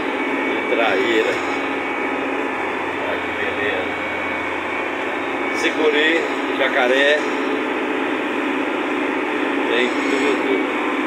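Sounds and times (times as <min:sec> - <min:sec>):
heavy machine engine droning: 0:00.0 - 0:11.0.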